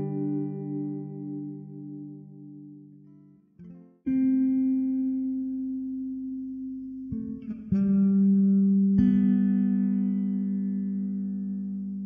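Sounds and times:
plucked guitar note: 0.0 - 2.8.

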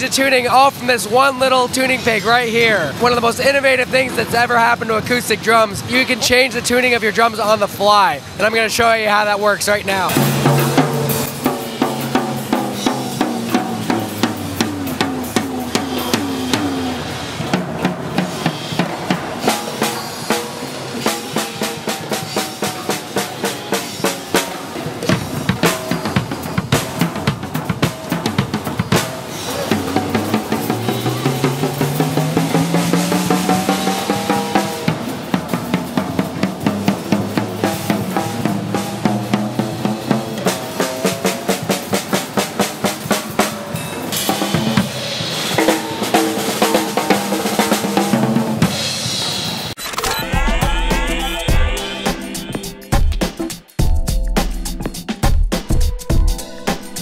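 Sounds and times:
drum kit and cymbals playing: 0.0 - 57.0
tom-tom drum struck with pitch bending: 10.1 - 23.2, 24.2 - 41.8, 50.2 - 57.0.

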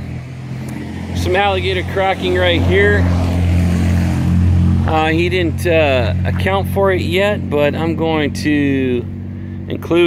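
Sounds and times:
low mechanical drone: 0.0 - 10.0.

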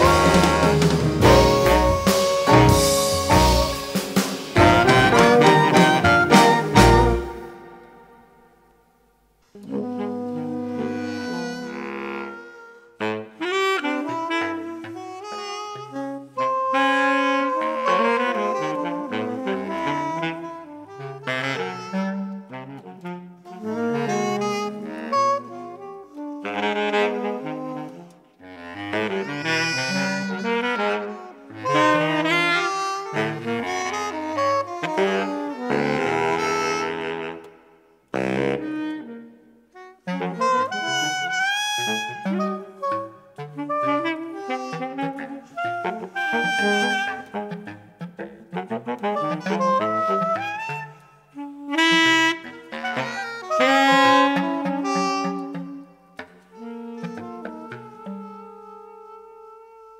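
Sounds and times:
jazz band backing: 0.0 - 59.9
jazz saxophone: 0.0 - 59.9.

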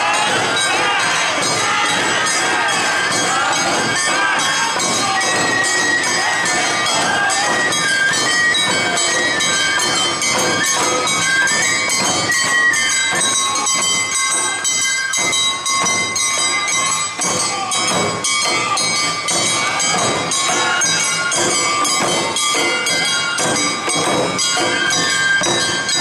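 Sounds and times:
ringing hand gong beats: 0.0 - 26.0
shamisen: 0.0 - 26.0
taiko drums: 0.0 - 26.0.

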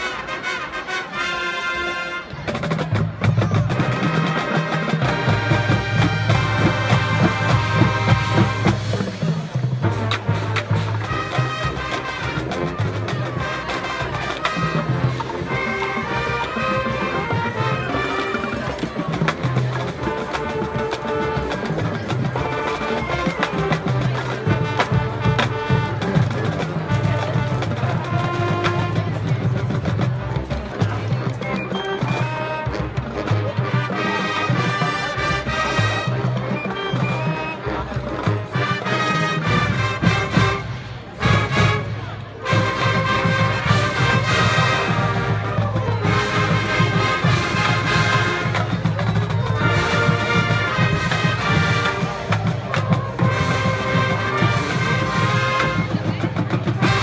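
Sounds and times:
marching band playing: 0.0 - 57.0
drum and percussion hits: 2.4 - 57.0.

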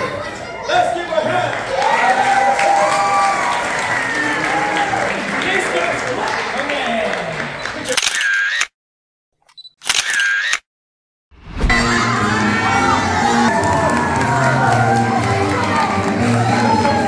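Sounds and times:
camera shutter clicks: 7.9 - 8.7, 9.5 - 10.7.

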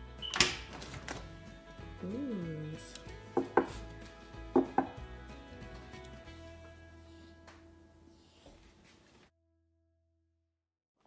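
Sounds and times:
soft background music: 0.0 - 8.9.

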